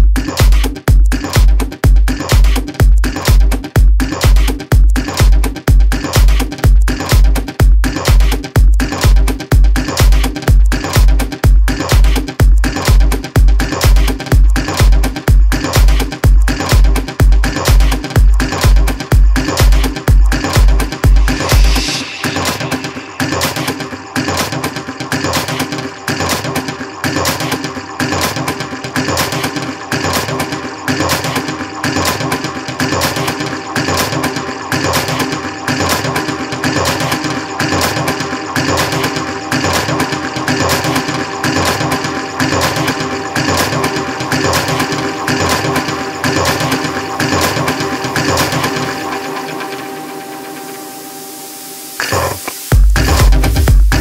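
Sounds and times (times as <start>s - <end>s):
rapid synth pulse: 0.0s - 54.0s.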